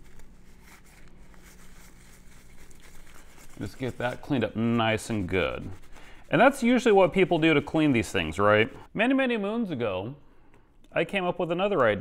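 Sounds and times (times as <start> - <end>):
paper towel rubbing metal: 0.0 - 8.9
low steady hum: 0.0 - 12.0.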